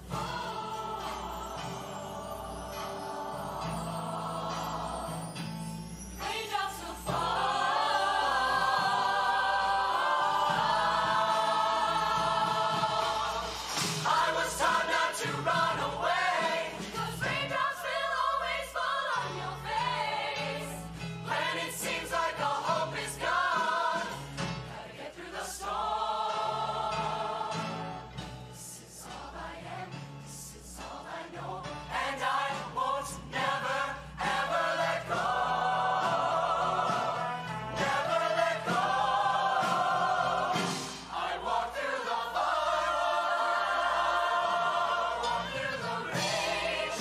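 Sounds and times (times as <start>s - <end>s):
choir singing in harmony: 0.0s - 47.0s.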